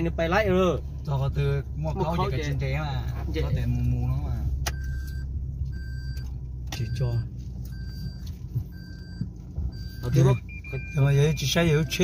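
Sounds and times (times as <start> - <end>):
car cabin engine and road rumble: 0.0 - 12.0
car warning chime beeping: 3.7 - 12.0.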